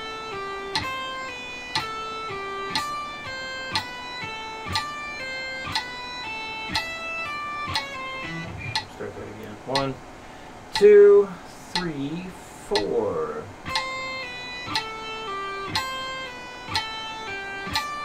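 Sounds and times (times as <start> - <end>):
metronome click: 0.0 - 10.0, 10.8 - 11.0, 11.7 - 12.1, 12.7 - 13.0, 13.6 - 18.0
electric guitar notes: 0.0 - 18.0
person counting: 10.8 - 13.9.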